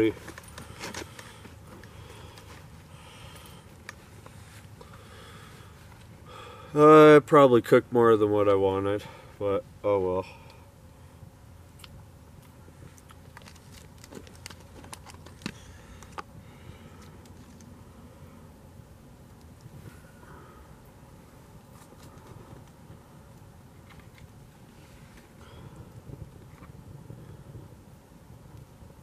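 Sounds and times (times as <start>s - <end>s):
low steady background noise: 0.0s - 29.0s.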